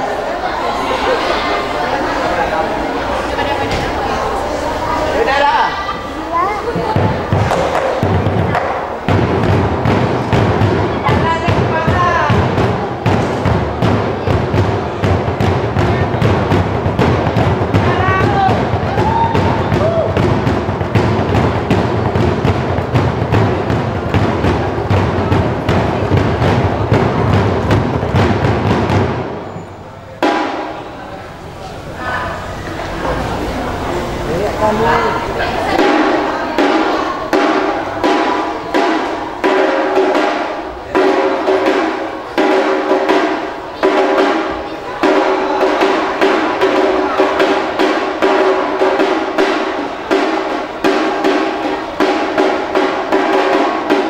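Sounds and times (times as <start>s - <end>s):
barrel drums beating: 0.0s - 54.0s.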